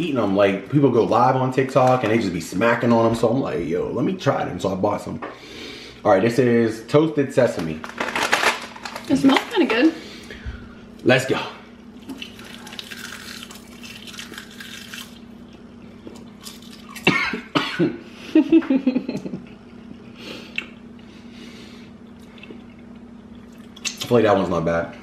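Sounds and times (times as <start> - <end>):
crunching seaweed snack: 12.1 - 15.3
person coughing: 17.0 - 18.0.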